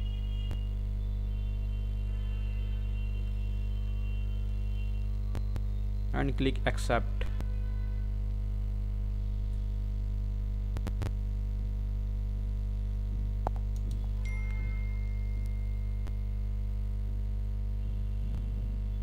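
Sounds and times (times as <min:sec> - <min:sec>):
electrical mains hum: 0:00.0 - 0:19.0.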